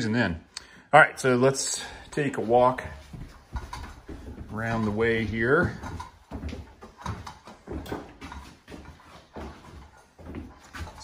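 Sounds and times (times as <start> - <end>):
footsteps on bare floor: 1.6 - 11.0.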